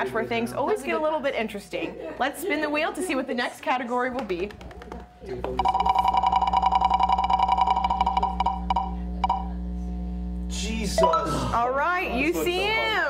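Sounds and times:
steady electronic tone: 5.6s - 11.8s.

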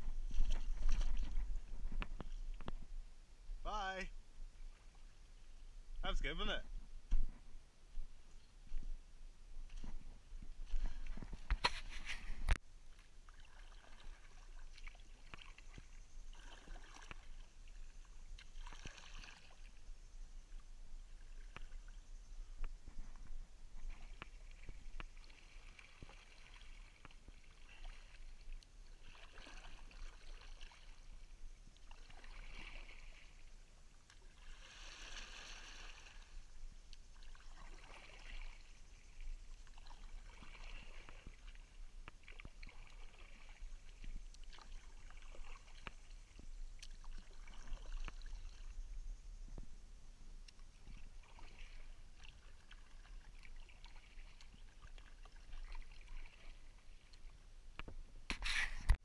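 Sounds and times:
kayak paddle splashing in water: 0.0s - 2.9s, 9.6s - 48.8s, 50.4s - 59.0s.

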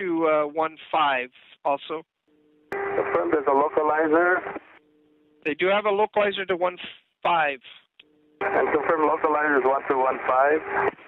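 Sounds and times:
faint low two-tone hum: 2.1s - 6.0s, 7.8s - 11.0s
pilot voice over radio: 8.4s - 10.6s.

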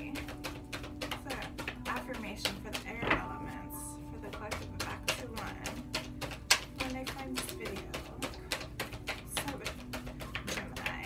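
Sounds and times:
cards being shuffled: 0.0s - 3.5s, 4.2s - 11.0s.

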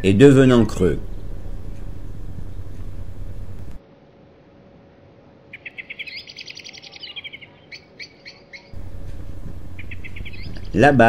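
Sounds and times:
songbird singing: 0.0s - 3.8s, 5.5s - 11.0s.

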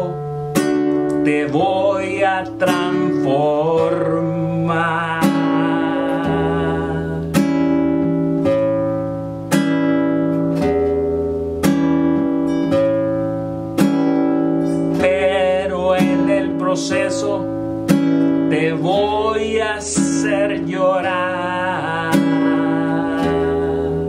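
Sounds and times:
classical guitar strumming: 0.0s - 24.0s.

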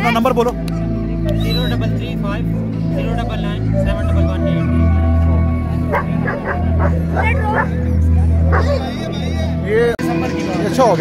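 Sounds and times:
background music with bass line: 0.0s - 11.0s
dog barking: 5.9s - 7.8s, 8.5s - 8.8s.

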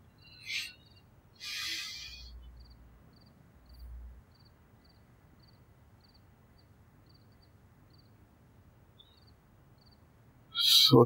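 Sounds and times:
crickets chirping: 0.0s - 8.2s, 9.0s - 10.6s
owl shrieking calls: 0.2s - 2.4s.

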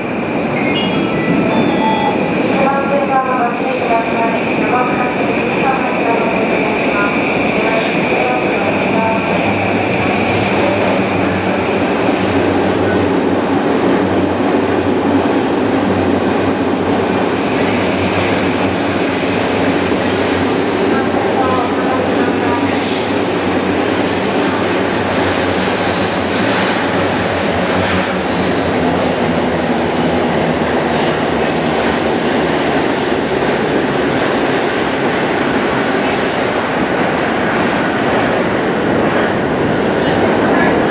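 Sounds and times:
electric train running past: 0.0s - 40.9s.

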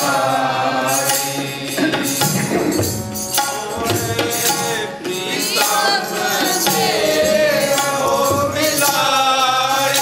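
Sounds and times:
harmonium: 0.0s - 10.0s
voices singing a hymn: 0.0s - 10.0s.

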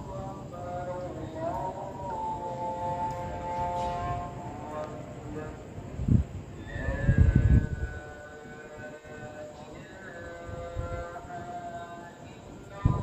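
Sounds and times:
distant amplified voice chanting: 0.0s - 13.0s
wind gusts on microphone: 5.4s - 11.6s, 12.4s - 13.0s.

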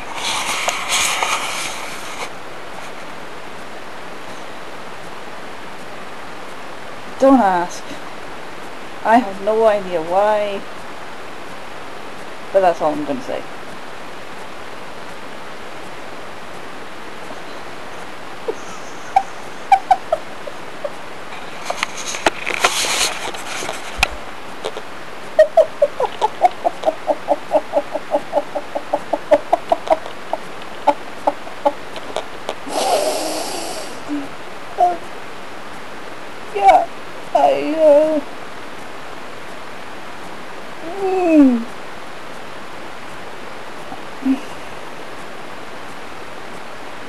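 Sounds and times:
steady hiss: 0.0s - 47.0s.

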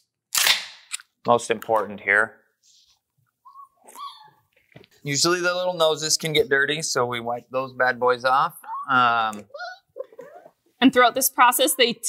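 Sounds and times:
puppy whining: 3.5s - 4.4s, 8.6s - 10.6s.

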